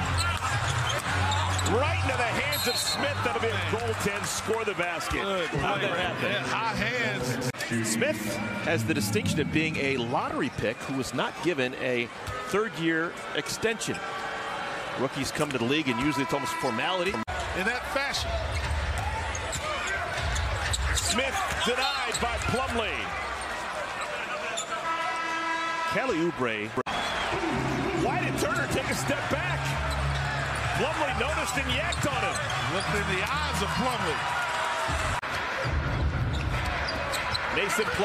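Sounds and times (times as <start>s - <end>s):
arena crowd noise: 0.0s - 38.0s
crowd rumble: 5.5s - 10.6s, 26.9s - 31.7s.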